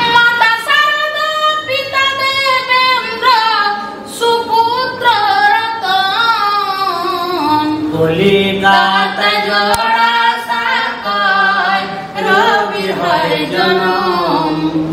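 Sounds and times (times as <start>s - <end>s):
woman singing unaccompanied: 0.0s - 7.9s.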